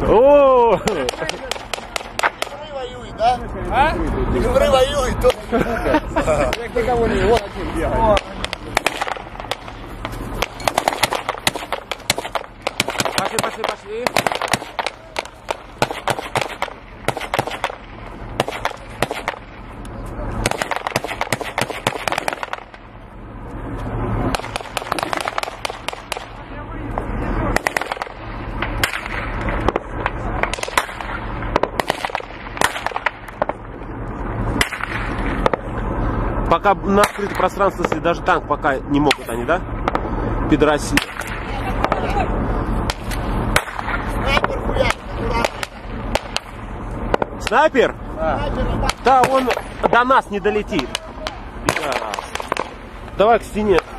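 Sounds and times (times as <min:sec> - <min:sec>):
low rumble: 0:00.0 - 0:53.9
gunshots: 0:00.9 - 0:02.7, 0:06.5 - 0:19.6, 0:20.4 - 0:22.9, 0:24.2 - 0:33.6, 0:34.5 - 0:35.7, 0:40.9 - 0:42.2, 0:42.9 - 0:47.6, 0:48.9 - 0:53.9.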